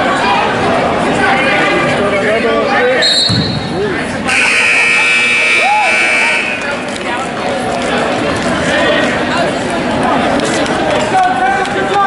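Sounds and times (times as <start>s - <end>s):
spectators' voices: 0.0s - 12.0s
scoreboard buzzer: 4.3s - 6.6s.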